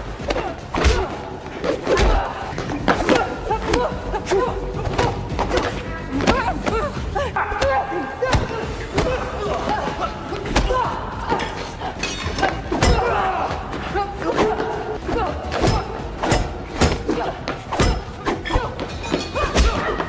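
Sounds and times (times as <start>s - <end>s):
grunts and effort cries: 0.0s - 20.0s.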